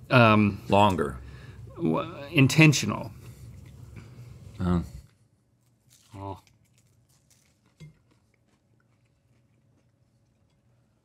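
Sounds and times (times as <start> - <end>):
chewing and crunching crackers: 5.6 - 11.0.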